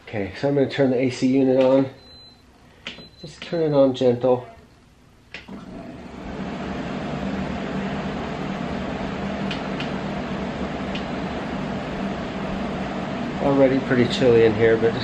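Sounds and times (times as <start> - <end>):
air conditioner fan rushing: 5.3 - 15.0
air conditioner switch click: 9.4 - 10.0, 10.9 - 11.2.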